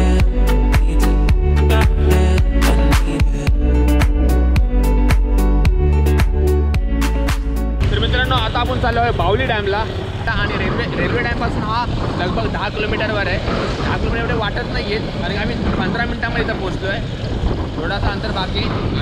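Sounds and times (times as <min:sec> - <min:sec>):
man talking: 0:07.8 - 0:17.1
motorcycle engine roar: 0:07.8 - 0:19.0
wind on microphone: 0:09.2 - 0:19.0.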